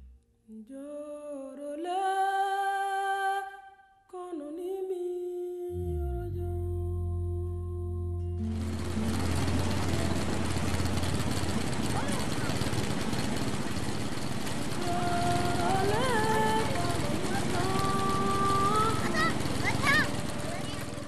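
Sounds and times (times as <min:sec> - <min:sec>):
high-pitched voices calling out: 0:17.4 - 0:21.0.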